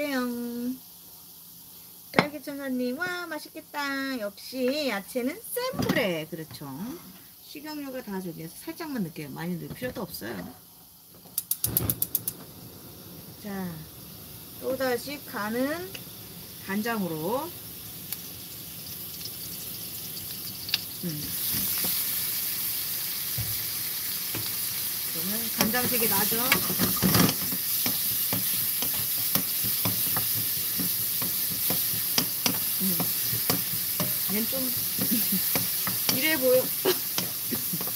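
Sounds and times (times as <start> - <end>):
vegetables sizzling in a frying pan: 0.0 - 37.9
gas stove igniter clicking: 11.3 - 12.6, 15.8 - 16.1, 25.4 - 37.9
low gas rush: 11.7 - 17.7
wooden spatula scraping a pan: 25.5 - 37.9.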